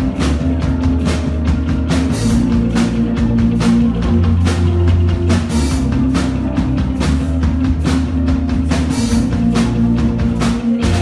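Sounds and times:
punk rock band playing: 0.0s - 11.0s.

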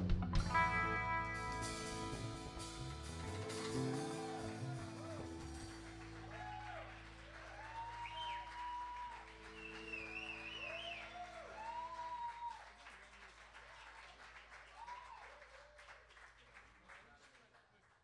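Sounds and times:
band chord ringing: 0.4s - 10.7s
audience cheering: 2.6s - 16.1s
audience applauding: 2.6s - 18.0s
whistling: 6.3s - 12.7s.

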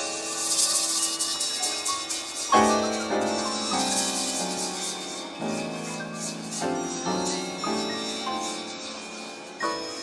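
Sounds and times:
pulsing high rattle: 0.0s - 10.0s.

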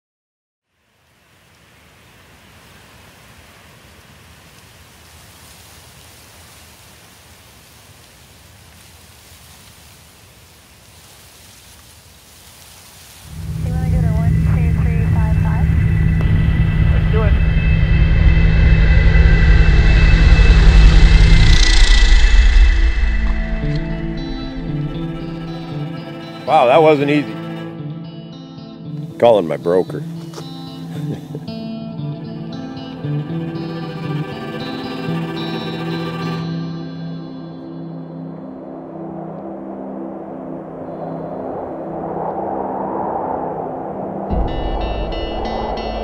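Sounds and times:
propeller plane engine drone: 13.3s - 26.5s.

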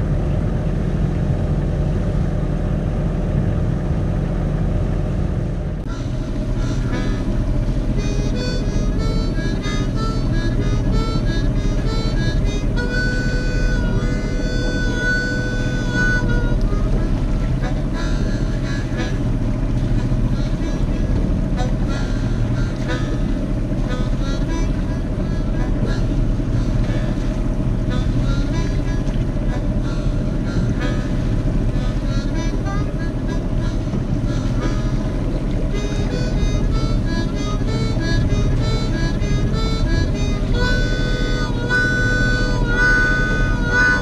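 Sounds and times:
boat engine droning: 0.0s - 44.0s.

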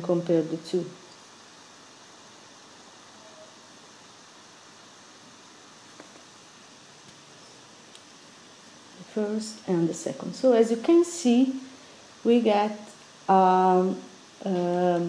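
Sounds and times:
microphone hiss: 0.0s - 15.0s.

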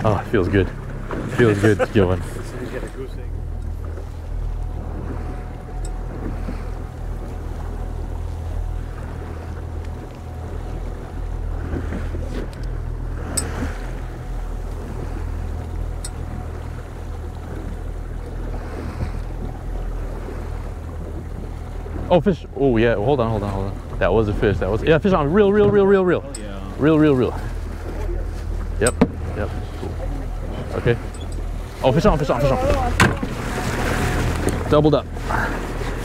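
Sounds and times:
outboard motor humming: 0.0s - 36.0s
water washing around hull: 0.0s - 36.0s.

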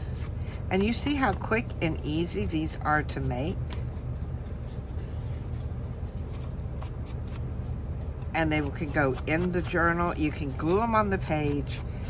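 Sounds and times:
paper rustling and brushing: 0.0s - 12.0s.

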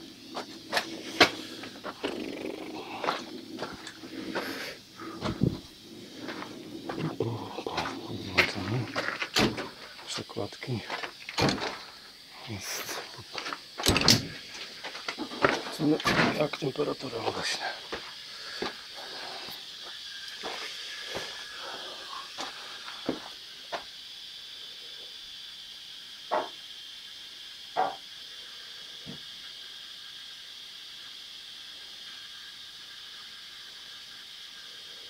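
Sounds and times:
steady high hiss: 0.0s - 35.0s.

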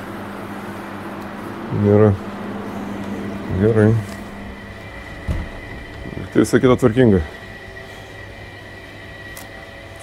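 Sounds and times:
mechanical hum: 0.0s - 10.0s
thin high whine: 0.0s - 10.0s
short low thump: 5.1s - 6.2s.

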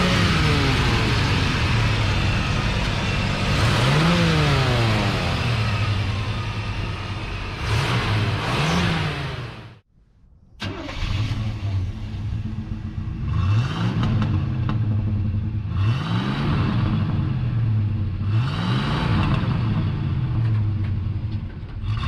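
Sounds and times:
car engine idling and revving: 0.0s - 9.9s, 10.6s - 22.0s.

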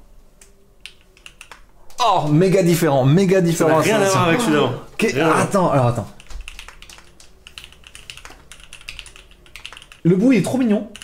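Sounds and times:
mechanical keyboard typing: 0.8s - 1.7s, 6.2s - 11.0s.

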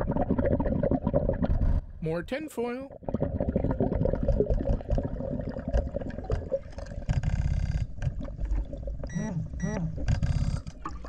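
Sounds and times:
gurgling exhaled bubbles: 0.0s - 1.9s, 2.9s - 11.0s.

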